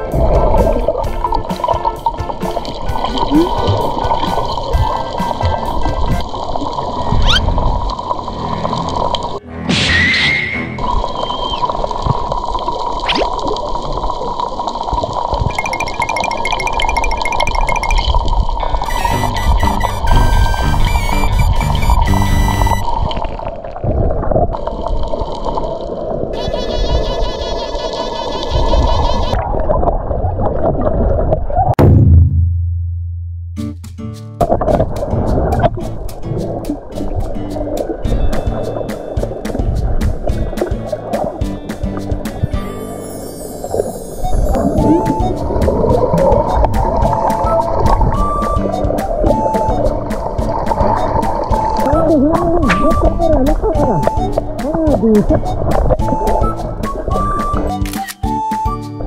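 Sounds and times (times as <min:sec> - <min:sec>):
background music: 0:00.0 - 0:06.4, 0:08.7 - 0:10.9, 0:18.9 - 0:22.8, 0:33.6 - 0:59.0
rising glide sound effect: 0:15.6 - 0:18.1.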